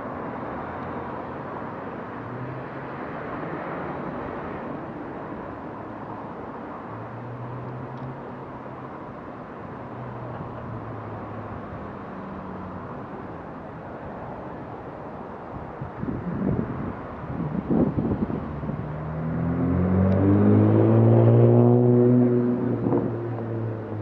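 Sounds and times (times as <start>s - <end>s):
street traffic passing: 0.0s - 24.0s
car engine speeding up: 18.3s - 24.0s.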